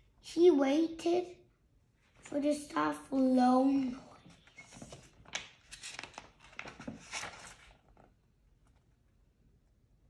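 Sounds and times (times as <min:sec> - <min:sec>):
paper pages rustling: 0:04.2 - 0:08.8.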